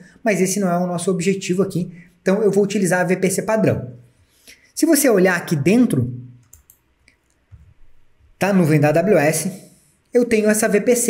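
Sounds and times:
man speaking: 0:00.0 - 0:04.0, 0:04.8 - 0:06.4, 0:08.4 - 0:11.0
computer mouse clicks: 0:06.4 - 0:07.7.

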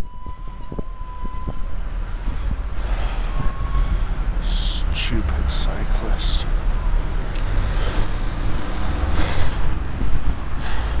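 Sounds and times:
road and traffic noise: 0:00.0 - 0:11.0
wind rumbling on microphone: 0:00.0 - 0:11.0.

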